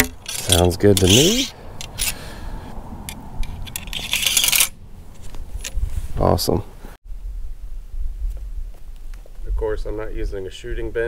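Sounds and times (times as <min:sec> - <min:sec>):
metal ramrod clinking: 0:00.0 - 0:02.2, 0:03.4 - 0:04.8
ramrod scraping along barrel: 0:00.0 - 0:02.2, 0:03.1 - 0:05.8.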